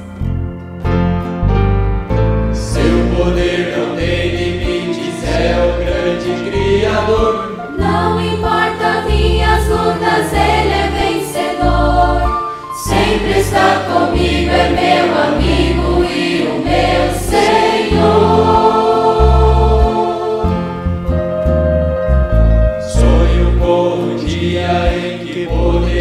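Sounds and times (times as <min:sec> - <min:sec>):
instrumental backing: 0:00.0 - 0:26.0
steady bass line: 0:00.0 - 0:26.0
choir singing a gospel hymn: 0:02.6 - 0:21.2, 0:22.8 - 0:26.0.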